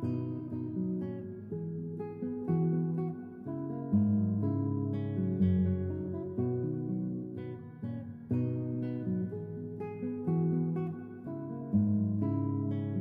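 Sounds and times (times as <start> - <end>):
plucked string chords: 0.0 - 13.0.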